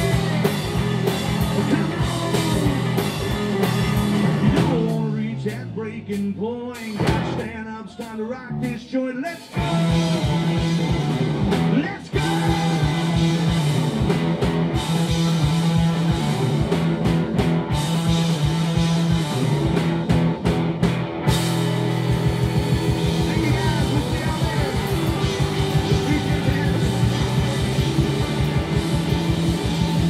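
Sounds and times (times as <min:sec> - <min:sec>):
loud rock band playing: 0:00.0 - 0:30.0.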